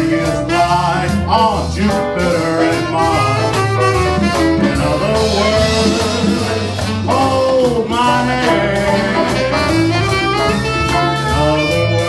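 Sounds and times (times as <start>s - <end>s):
jazz band playing swing: 0.0s - 12.0s
man singing: 0.0s - 12.0s.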